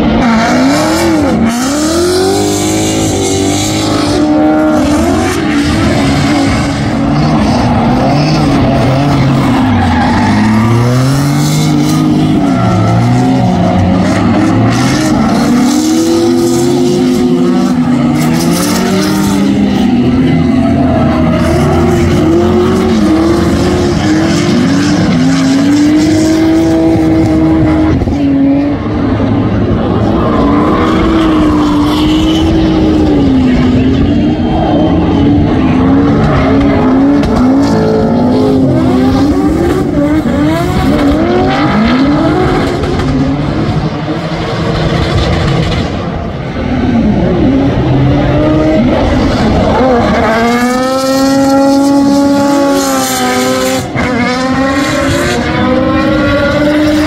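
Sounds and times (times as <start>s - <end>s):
car engines revving hard: 0.0s - 57.0s.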